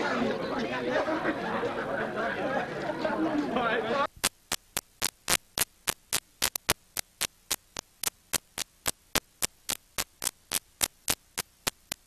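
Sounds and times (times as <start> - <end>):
sharp static clicks: 4.1 - 12.0.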